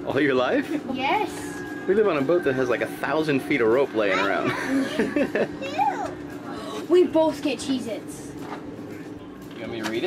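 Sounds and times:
children talking: 0:00.7 - 0:08.4.

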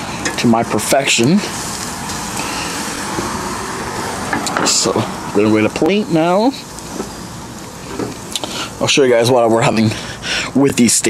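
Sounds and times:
rushing background noise: 0:00.0 - 0:10.6.

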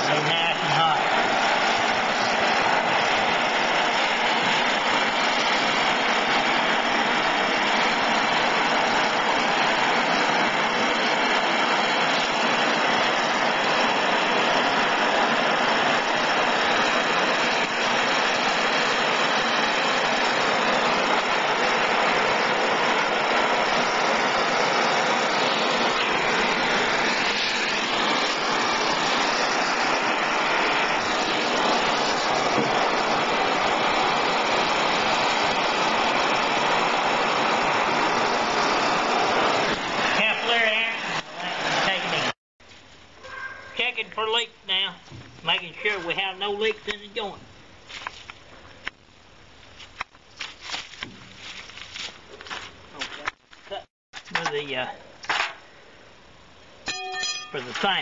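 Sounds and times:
gas torch flame hissing: 0:00.0 - 0:42.3.

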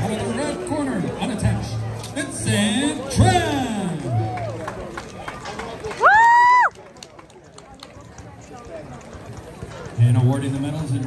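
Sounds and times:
faint voices: 0:00.0 - 0:11.0
spectator whooping: 0:06.0 - 0:06.7.

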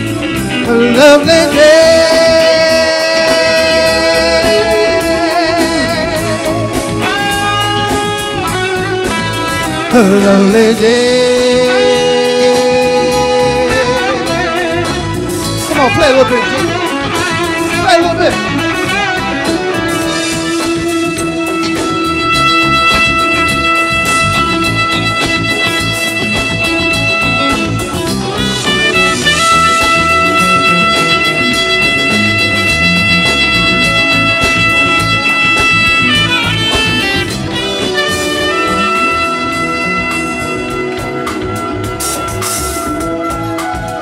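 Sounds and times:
bass: 0:00.0 - 0:44.0
drums: 0:00.0 - 0:44.0.

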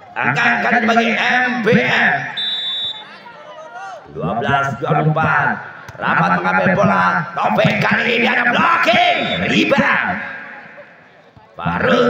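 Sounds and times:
referee's whistle blast: 0:02.2 - 0:03.3, 0:09.1 - 0:09.6.

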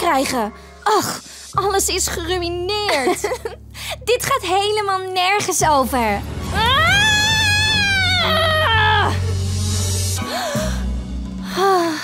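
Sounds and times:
background music: 0:00.0 - 0:12.0
girl screaming in frustration: 0:06.6 - 0:09.2.

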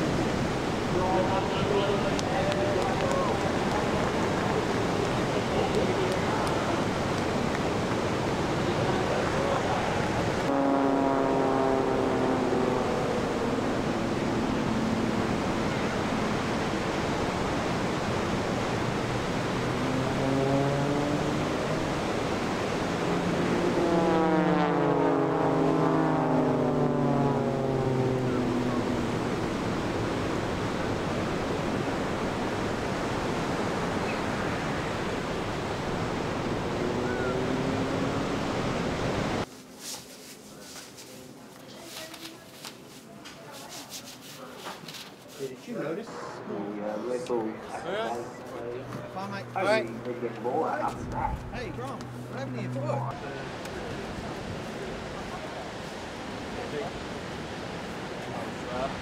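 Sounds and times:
long falling horn-like tone: 0:08.5 - 0:17.1, 0:19.5 - 0:32.4, 0:34.2 - 0:39.4, 0:46.0 - 0:50.0.

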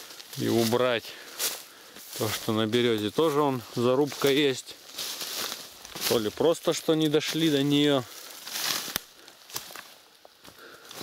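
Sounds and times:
footsteps through brush: 0:00.0 - 0:11.0
leaves rustling: 0:00.0 - 0:11.0
branch cracking: 0:04.1 - 0:06.4, 0:07.0 - 0:11.0.

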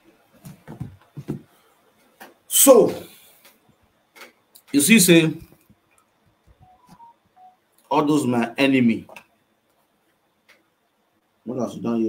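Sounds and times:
man speaking: 0:02.5 - 0:03.2, 0:04.7 - 0:05.5, 0:07.9 - 0:09.2, 0:11.5 - 0:12.0.

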